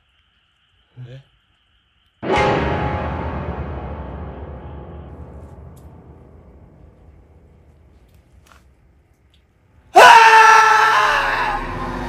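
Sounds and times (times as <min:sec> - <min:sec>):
man screaming: 0:09.9 - 0:12.0.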